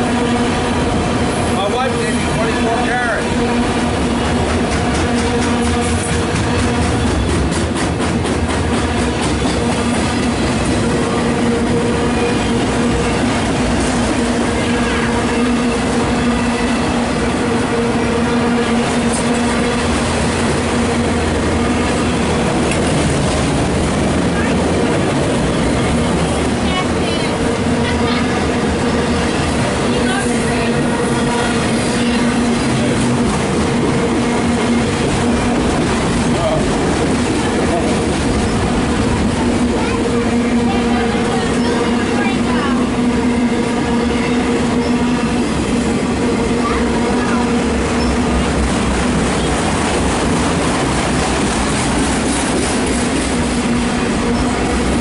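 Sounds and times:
steel wheels clattering on rails: 0.0s - 55.0s.

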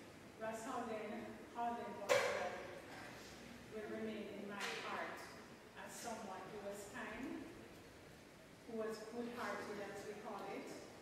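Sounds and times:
woman speaking into a microphone: 0.4s - 3.1s, 3.7s - 7.6s, 8.7s - 10.9s.

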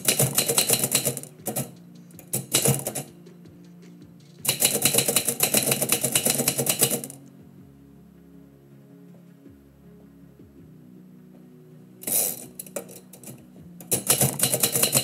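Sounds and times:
typewriter keys clacking: 0.0s - 3.1s, 4.4s - 7.2s, 12.0s - 15.0s
faint background music: 0.0s - 15.0s.

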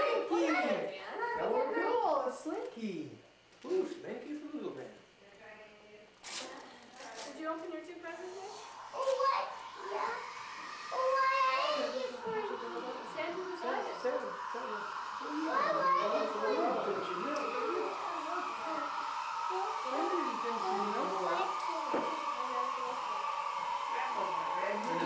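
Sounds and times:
steady hum: 0.0s - 25.0s
adults and children chattering: 8.3s - 25.0s.

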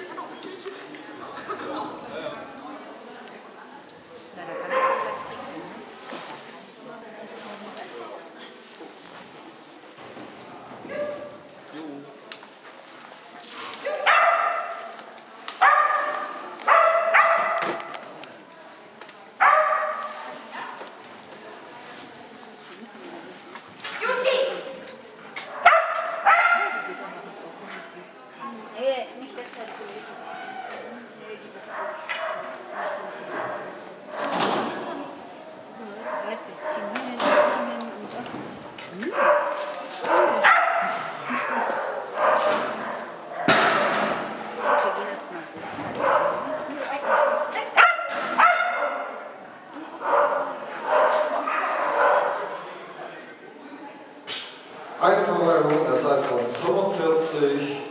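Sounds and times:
dog barking: 4.6s - 5.3s, 14.0s - 14.9s, 15.6s - 17.8s, 19.4s - 20.1s, 25.5s - 26.9s, 31.7s - 34.3s, 36.1s - 37.7s, 39.2s - 43.6s, 44.6s - 45.0s, 46.0s - 49.2s, 50.0s - 52.5s.

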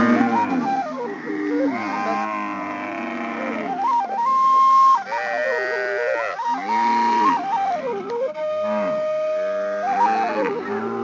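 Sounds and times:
flute-like melody with pitch bends: 0.0s - 11.0s.

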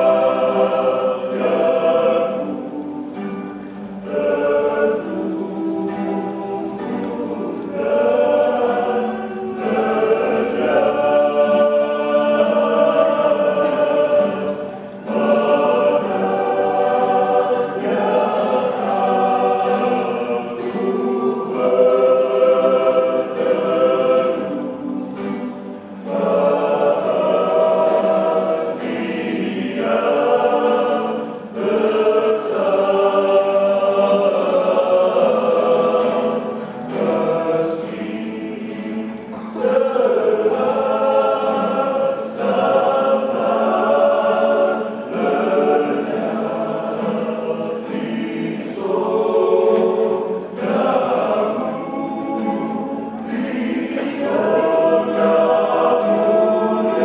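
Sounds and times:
acoustic guitar: 0.0s - 57.0s
men's vocal group singing: 0.0s - 57.0s.

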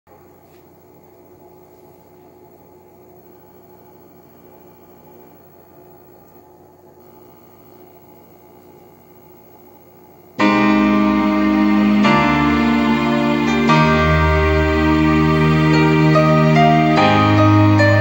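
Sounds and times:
piano ballad: 10.4s - 18.0s.

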